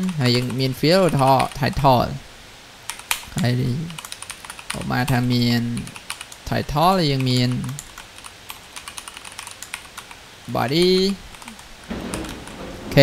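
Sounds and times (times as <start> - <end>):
computer keyboard typing: 0.0 - 1.9, 2.9 - 3.2, 3.8 - 6.4, 7.1 - 10.2, 10.8 - 12.6.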